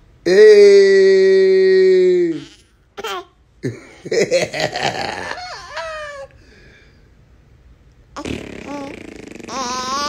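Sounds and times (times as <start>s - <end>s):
baby cooing: 8.2s - 10.0s.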